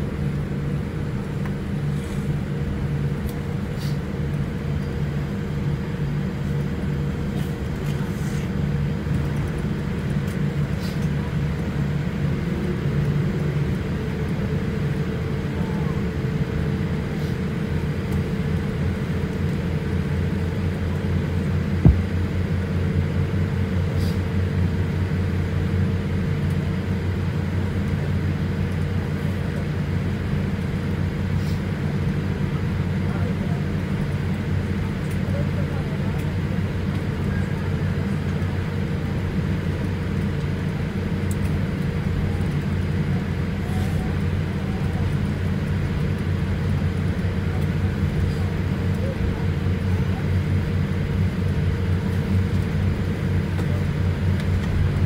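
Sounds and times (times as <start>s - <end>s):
jet engines idling rumble: 0.0s - 55.0s.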